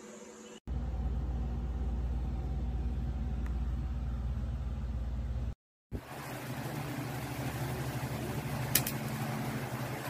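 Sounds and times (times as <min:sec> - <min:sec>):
electric fan running: 0:00.7 - 0:10.0
fan click: 0:08.6 - 0:09.2.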